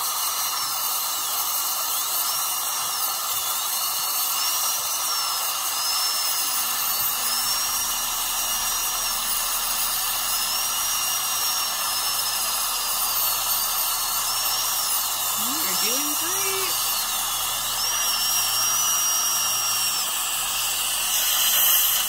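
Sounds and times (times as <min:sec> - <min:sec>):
dental drill whine: 0:00.0 - 0:22.0
steady hiss: 0:16.2 - 0:22.0.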